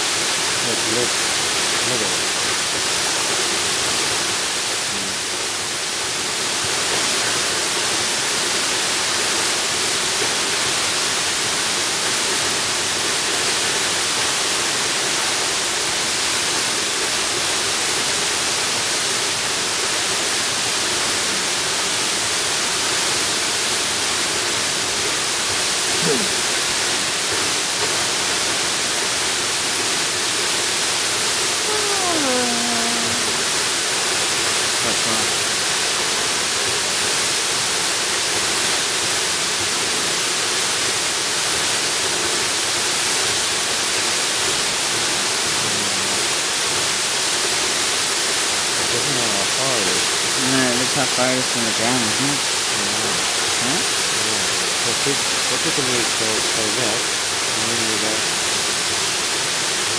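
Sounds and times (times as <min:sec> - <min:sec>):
waterfall rushing: 0:00.0 - 0:59.9.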